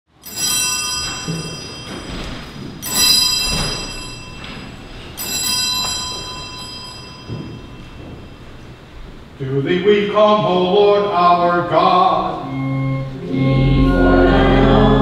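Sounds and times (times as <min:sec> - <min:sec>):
bell ringing high and bright: 0:00.2 - 0:08.5.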